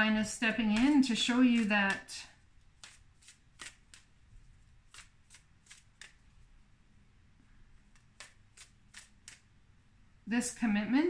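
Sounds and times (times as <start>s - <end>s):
playing cards being shuffled: 0.5s - 6.5s, 7.9s - 9.5s.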